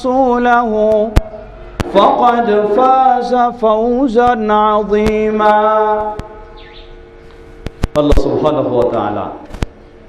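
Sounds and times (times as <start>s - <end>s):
man chanting recitation: 0.0s - 6.5s, 7.9s - 9.5s
faint steady hum: 0.0s - 10.0s.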